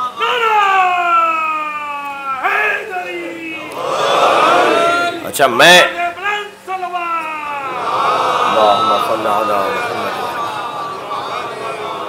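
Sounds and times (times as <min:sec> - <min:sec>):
man shouting a long cry: 0:00.0 - 0:03.6.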